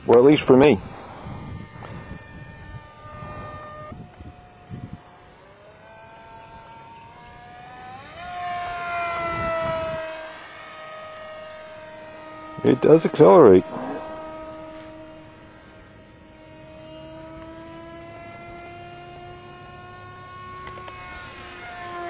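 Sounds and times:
electric motor and propeller whining: 0:00.0 - 0:22.0.

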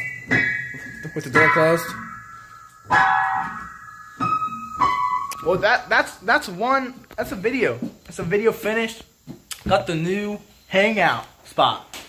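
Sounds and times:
piano chord ringing: 0:00.0 - 0:06.3.

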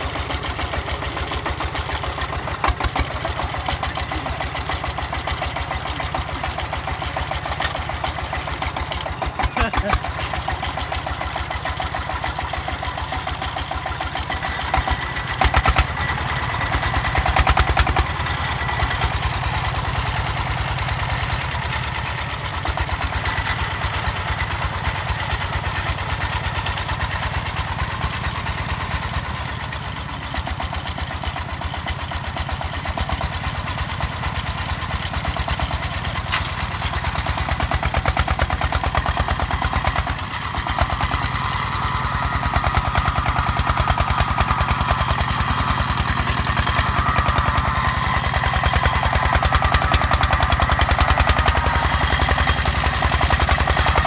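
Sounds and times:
single-cylinder diesel engine running: 0:00.0 - 0:54.0.

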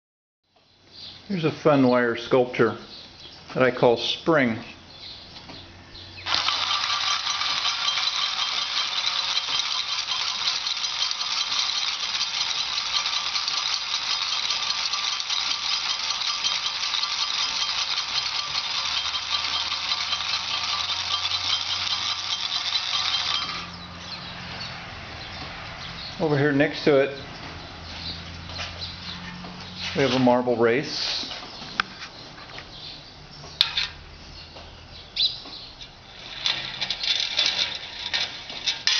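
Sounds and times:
metallic wire jangling: 0:06.3 - 0:24.2, 0:36.0 - 0:38.9.

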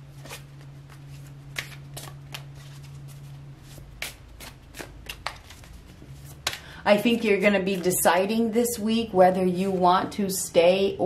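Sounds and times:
cards being shuffled: 0:00.1 - 0:06.7.

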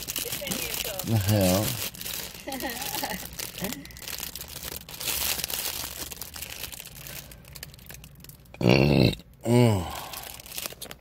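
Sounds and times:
croutons shaken from bag: 0:00.0 - 0:08.0
plastic bags crinkling: 0:00.0 - 0:08.6, 0:09.8 - 0:11.0.

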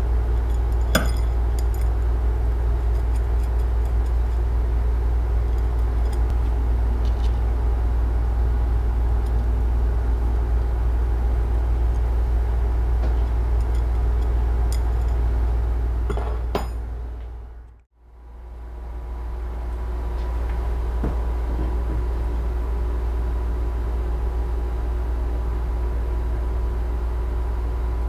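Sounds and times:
low machine hum: 0:00.0 - 0:28.0.

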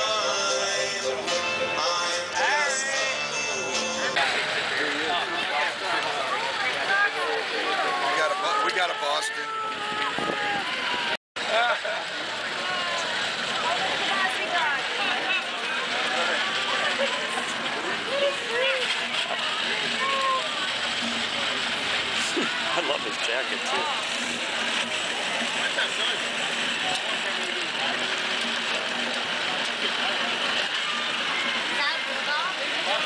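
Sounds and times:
crowd chatter: 0:00.0 - 0:33.0.

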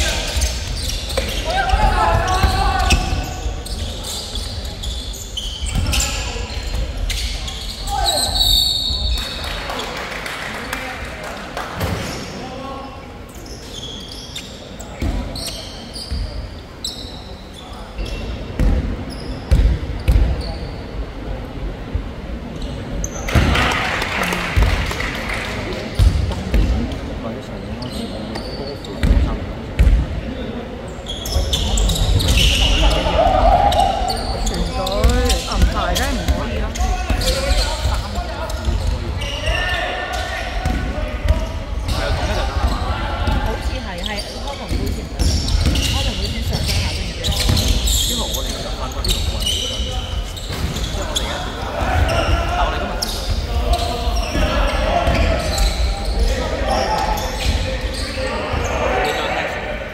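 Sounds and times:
voices calling out: 0:31.1 - 0:59.9.

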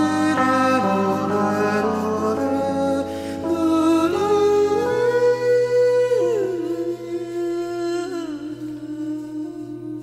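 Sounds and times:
sustained musical backing: 0:00.0 - 0:10.0.

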